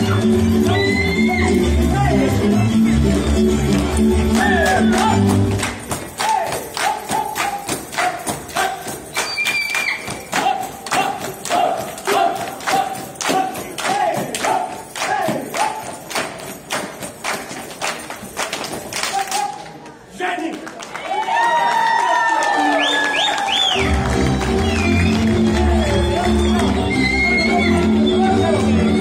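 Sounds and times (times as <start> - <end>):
band music: 0.0 - 13.8, 23.6 - 29.0
rhythmic shouts: 0.0 - 16.9, 21.1 - 29.0
dancers clapping and stamping: 3.7 - 19.8, 20.5 - 26.9
high whistle: 9.1 - 10.3, 22.7 - 23.9, 24.6 - 28.6.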